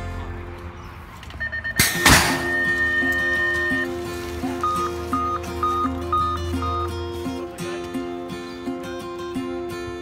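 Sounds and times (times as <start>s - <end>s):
background music: 1.5s - 10.0s
metal start gate slamming: 1.8s - 3.3s.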